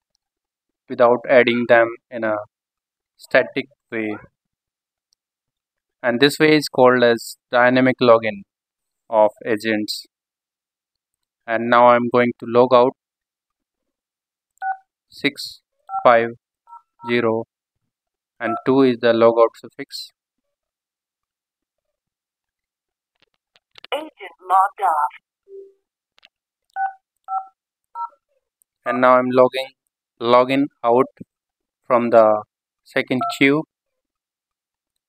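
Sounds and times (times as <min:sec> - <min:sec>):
touch-tone keypad beeps: 0:14.6 - 0:14.8, 0:15.9 - 0:16.1, 0:26.8 - 0:28.2, 0:33.2 - 0:33.4.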